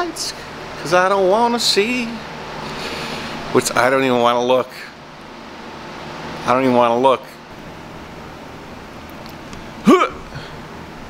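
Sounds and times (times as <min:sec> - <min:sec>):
box fan hissing: 0:00.0 - 0:11.0
man saying huh: 0:09.8 - 0:10.4.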